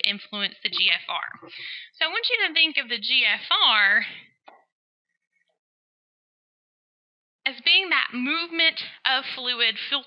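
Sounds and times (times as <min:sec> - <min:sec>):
person speaking: 0:00.0 - 0:04.6.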